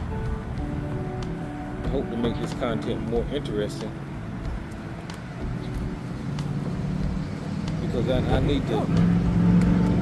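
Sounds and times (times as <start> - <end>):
car engine running: 4.2 - 10.0.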